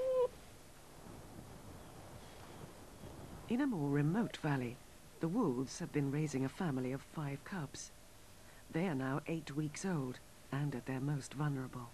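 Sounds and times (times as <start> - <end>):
faint whimpers: 0.0 - 0.3
wild dog whining: 0.0 - 0.4.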